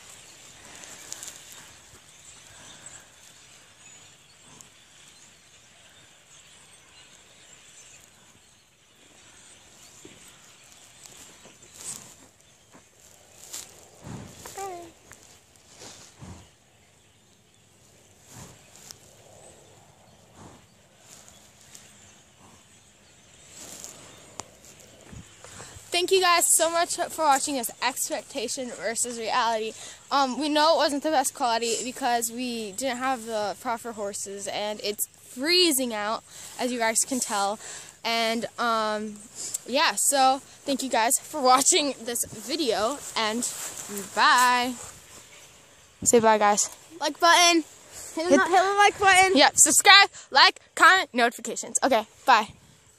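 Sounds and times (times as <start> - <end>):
faint voices: 14.0 - 16.5.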